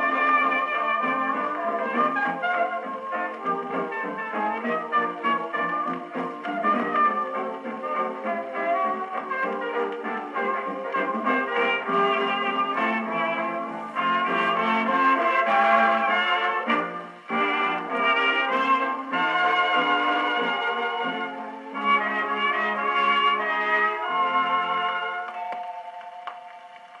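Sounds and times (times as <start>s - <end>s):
dance orchestra on gramophone record: 0.0s - 27.0s
trumpets trombones and reeds: 0.0s - 27.0s.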